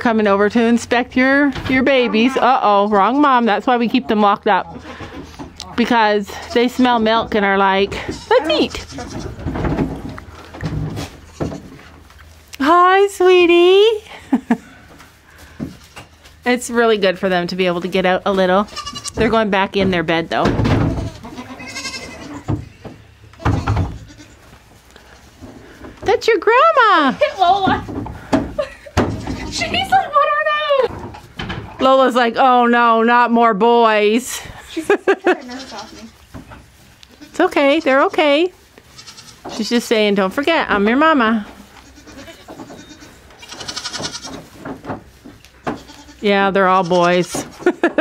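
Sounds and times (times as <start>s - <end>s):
goat kid bleating: 8.0s - 9.4s, 18.6s - 19.2s, 20.9s - 22.8s, 23.4s - 25.2s, 35.2s - 36.2s, 38.8s - 39.6s, 41.6s - 44.5s, 45.7s - 46.2s.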